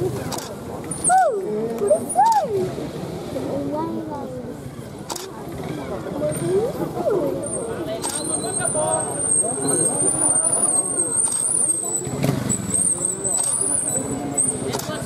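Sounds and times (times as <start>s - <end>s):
spectators chattering: 0.0s - 15.0s
camera shutter clicks: 5.1s - 5.3s.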